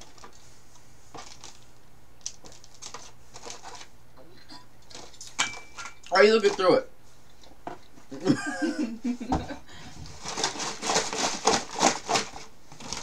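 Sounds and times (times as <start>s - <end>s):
snack wrappers crinkling: 1.1s - 3.9s, 10.2s - 13.0s.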